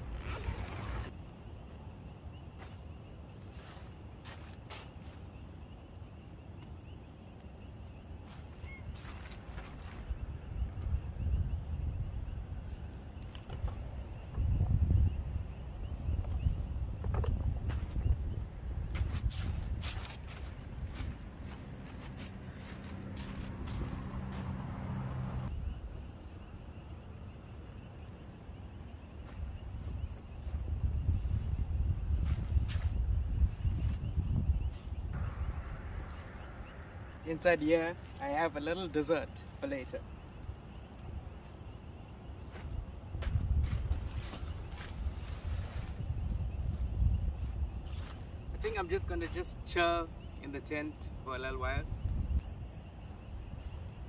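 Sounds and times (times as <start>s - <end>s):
high insect chirring: 0.0s - 54.0s
footsteps: 18.8s - 25.1s.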